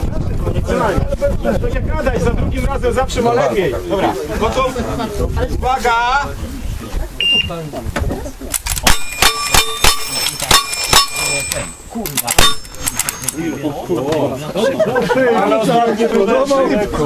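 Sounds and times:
rapid rifle shots: 8.6 - 13.4.

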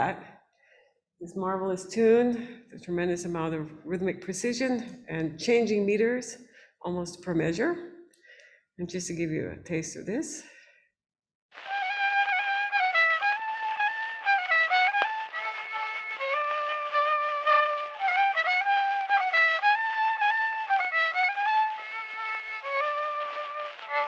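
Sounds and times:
fast folk violin tune: 11.6 - 24.0.

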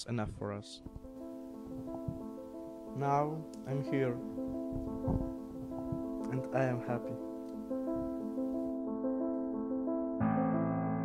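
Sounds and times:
soft piano music: 0.0 - 11.0.

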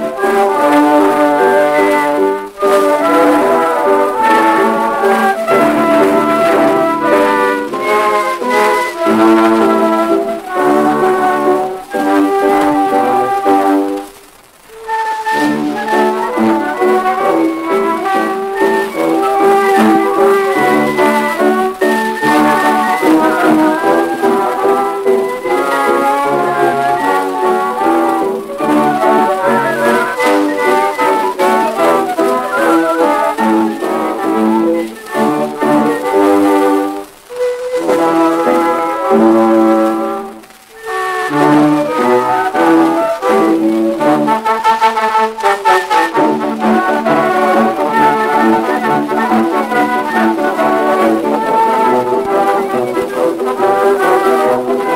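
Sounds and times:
old orchestral recording with brass: 0.0 - 54.9.

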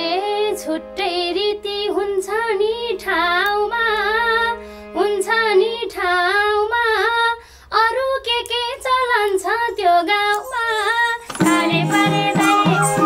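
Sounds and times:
woman singing folk song: 0.0 - 13.0
harmonium: 0.1 - 6.7, 11.1 - 13.0
hand drum: 11.3 - 13.0.

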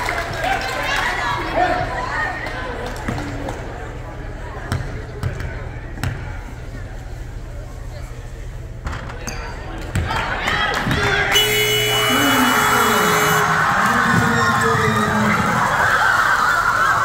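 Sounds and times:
electronic buzzer horn: 11.3 - 13.6
crowd cheering and screaming: 11.4 - 17.0.

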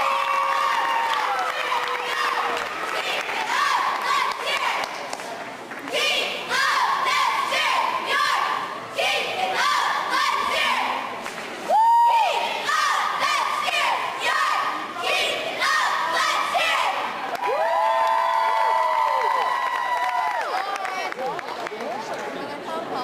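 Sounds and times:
girls shouting a cheer in unison: 0.0 - 4.9, 5.9 - 11.1, 11.7 - 20.5.

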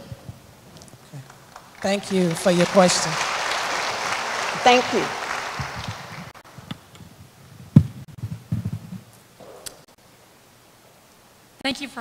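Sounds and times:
audience applause: 1.0 - 6.6.

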